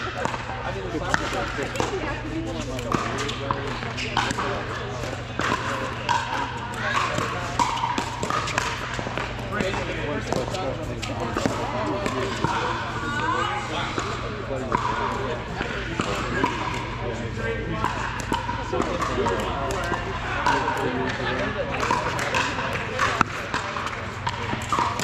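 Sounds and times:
balls bouncing on court: 0.0s - 25.0s
murmur of voices: 0.0s - 25.0s
paddles hitting balls: 0.0s - 25.0s.

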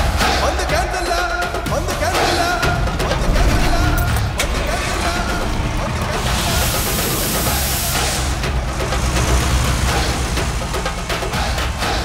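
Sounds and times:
film score music: 0.0s - 12.0s
bus engine starting and rumbling: 1.7s - 12.0s
hiss of air: 3.4s - 12.0s.

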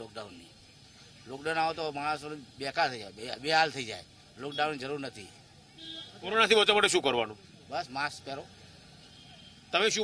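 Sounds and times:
man speaking: 6.2s - 8.6s, 9.7s - 10.0s.

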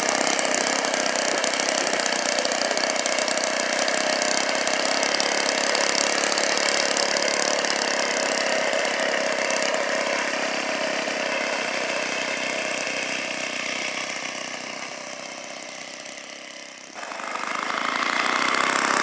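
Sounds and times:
model aircraft engine running: 0.0s - 19.0s.

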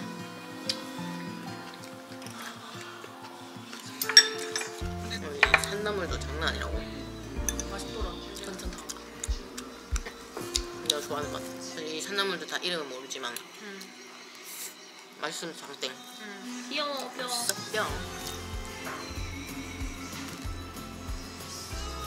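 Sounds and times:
background music: 0.0s - 22.0s
cutlery clinking on bowls: 4.0s - 4.8s, 5.4s - 5.9s.

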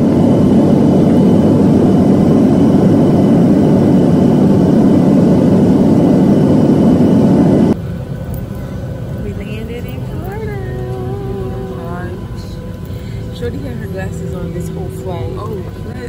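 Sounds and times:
jet engine noise in cabin: 0.0s - 16.0s.

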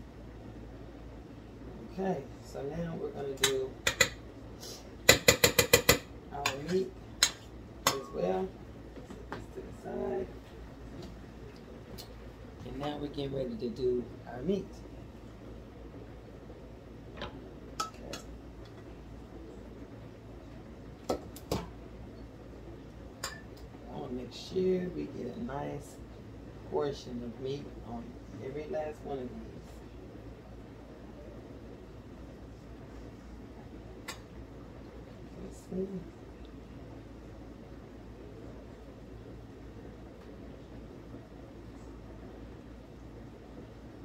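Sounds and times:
low steady hum: 0.0s - 44.0s
utensil clinking on cookware: 3.4s - 4.2s, 5.1s - 8.2s.

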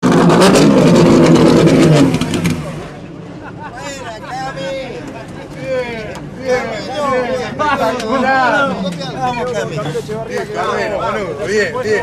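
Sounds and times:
race car engine running: 0.0s - 3.0s
voices: 2.3s - 12.0s.

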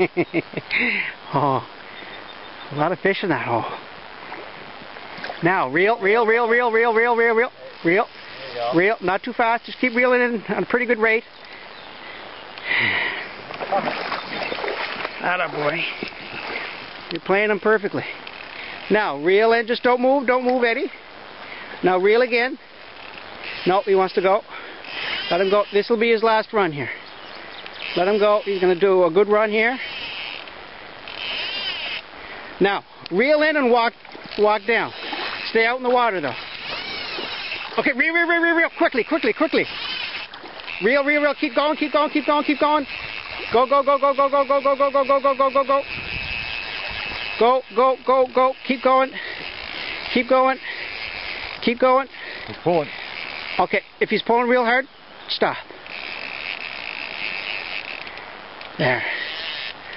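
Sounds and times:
fishing reel buzzing: 5.8s - 59.9s.

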